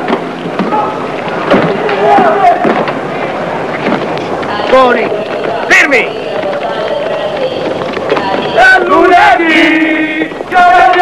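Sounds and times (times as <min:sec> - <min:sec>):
noisy din: 0:00.0 - 0:11.0.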